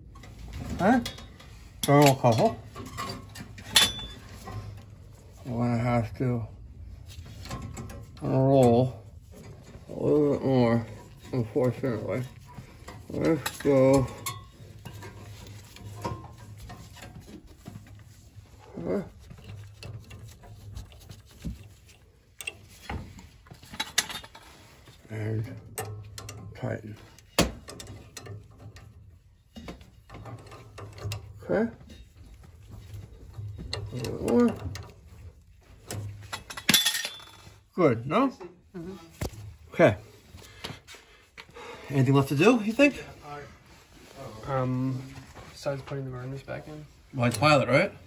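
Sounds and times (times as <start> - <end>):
clicks and knocks of hand work: 0.0 - 5.2, 10.8 - 37.6.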